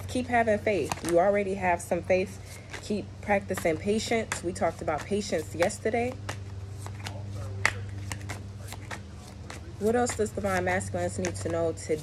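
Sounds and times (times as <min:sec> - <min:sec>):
cards being shuffled: 0:00.6 - 0:01.4, 0:02.3 - 0:12.0.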